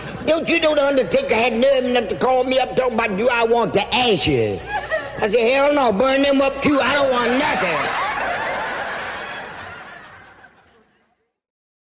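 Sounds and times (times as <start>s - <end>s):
audience laughing: 7.0s - 11.3s.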